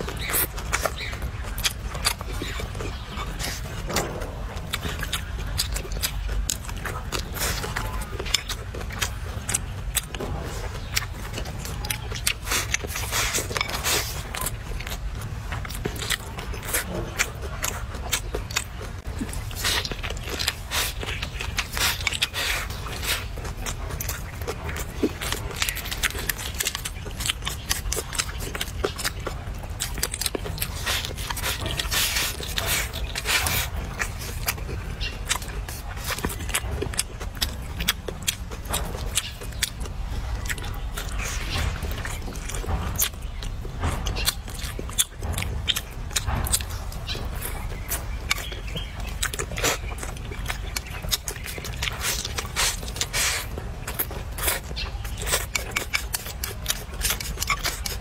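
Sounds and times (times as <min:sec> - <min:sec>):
chewing with wet smacks: 0:00.0 - 0:58.0.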